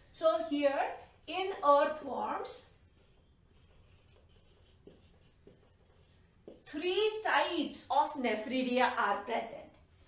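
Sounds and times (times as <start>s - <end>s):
marker writing on whiteboard: 0.3s - 7.2s, 9.6s - 10.0s.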